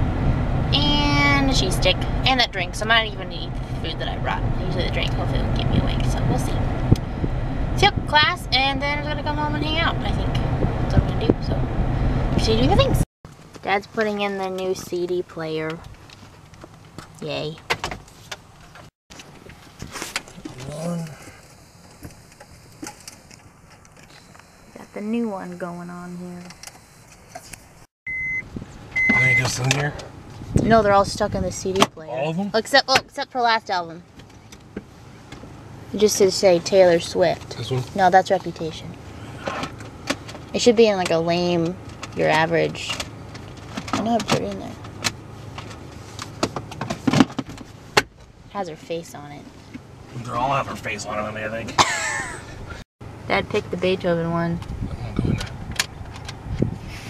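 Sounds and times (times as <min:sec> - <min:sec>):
handling rustle: 0:15.8 - 0:24.6
high electronic beeps: 0:28.1 - 0:28.4, 0:29.0 - 0:29.5.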